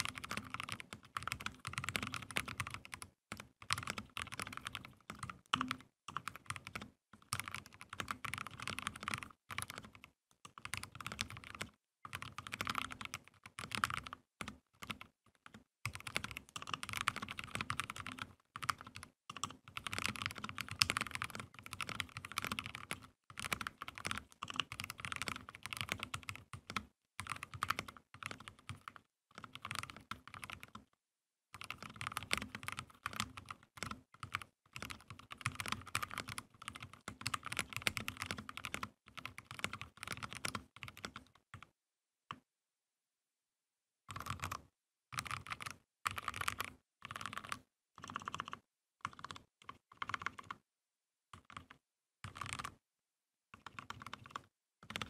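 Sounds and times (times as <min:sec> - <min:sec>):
mechanical keyboard typing: 0:00.0 - 0:30.9, 0:31.5 - 0:41.7, 0:44.1 - 0:44.6, 0:45.2 - 0:50.6, 0:51.4 - 0:52.8, 0:53.6 - 0:55.0.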